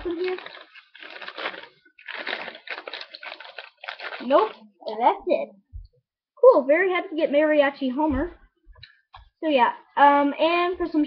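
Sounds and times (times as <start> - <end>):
plastic wrapper crinkling: 0.0 - 4.7.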